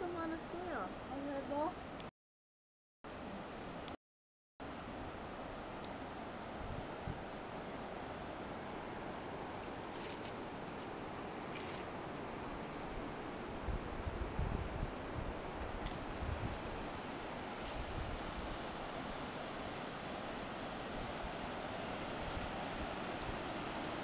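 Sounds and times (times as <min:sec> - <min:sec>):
distant flowing water: 0:00.0 - 0:02.0, 0:04.6 - 0:24.0
wind: 0:00.0 - 0:02.1, 0:03.1 - 0:04.0, 0:04.6 - 0:24.0
wind buffeting microphone: 0:13.1 - 0:18.9.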